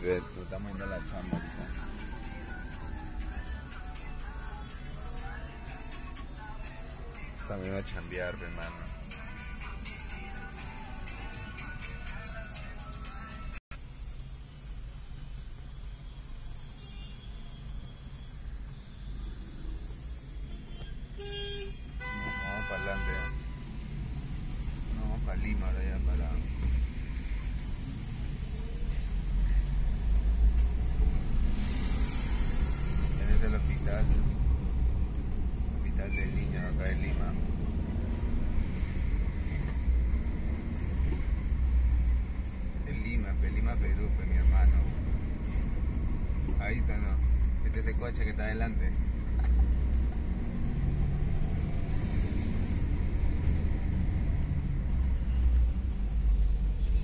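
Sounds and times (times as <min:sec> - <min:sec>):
car engine and tyre rumble: 0:00.0 - 0:11.2, 0:13.8 - 0:57.0
car horn: 0:20.7 - 0:23.6.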